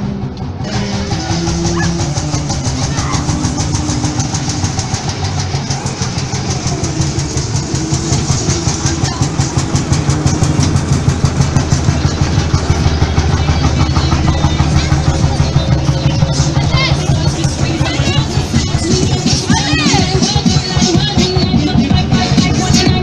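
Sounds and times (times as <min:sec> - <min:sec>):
tractor engine thudding: 0:00.3 - 0:23.0.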